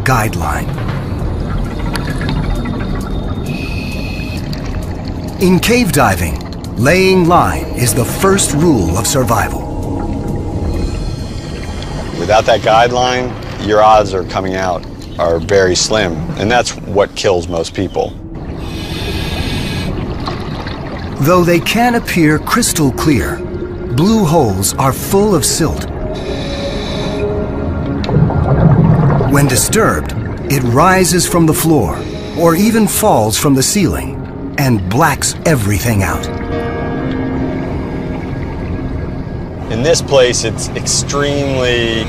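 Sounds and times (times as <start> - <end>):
steady low rush: 0.0 - 17.3, 18.1 - 42.0
underwater bubbling rumble: 0.0 - 34.6
soft background music: 0.0 - 42.0
steady high tone: 5.4 - 13.4, 21.2 - 36.7
hiss: 18.6 - 19.9.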